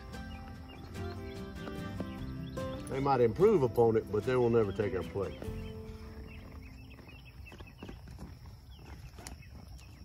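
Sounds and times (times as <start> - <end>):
high chirps: 0.0 - 7.8.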